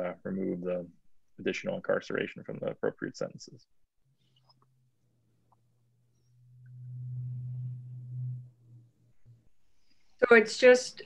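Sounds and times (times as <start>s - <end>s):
low steady hum: 2.6s - 10.3s.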